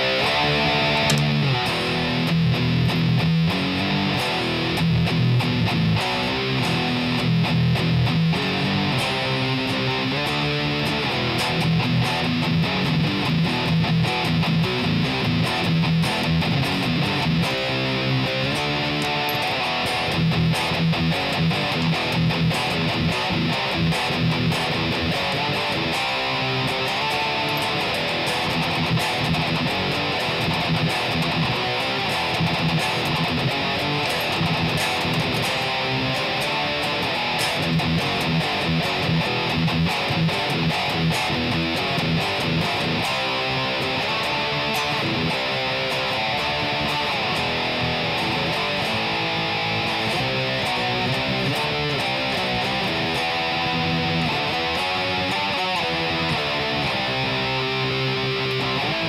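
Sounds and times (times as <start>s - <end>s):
distorted electric guitar riffs: 0.0s - 59.0s.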